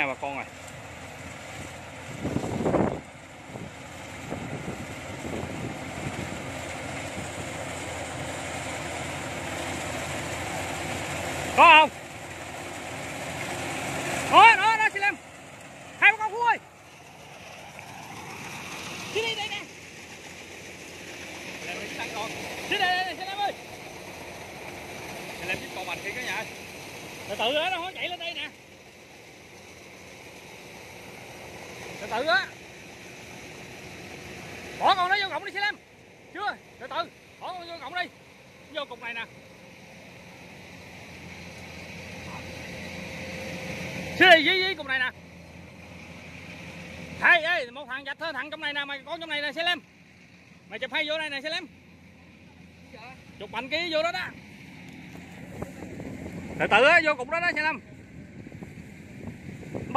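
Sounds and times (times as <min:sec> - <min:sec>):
combine harvester engine: 0:00.0 - 0:59.9.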